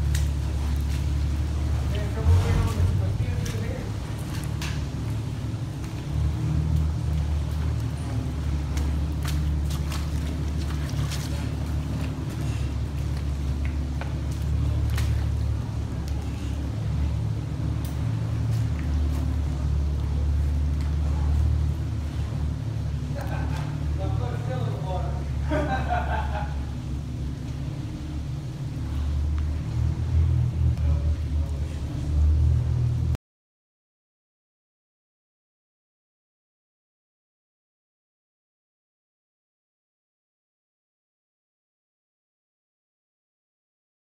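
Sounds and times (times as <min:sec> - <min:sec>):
engine running at low revs: 0:00.0 - 0:33.2.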